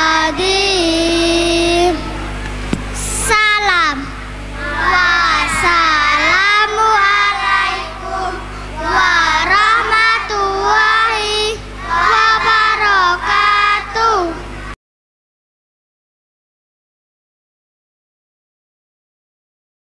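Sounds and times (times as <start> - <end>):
children singing in unison: 0.0 - 2.3, 4.5 - 14.8
steady low hum: 0.0 - 14.8.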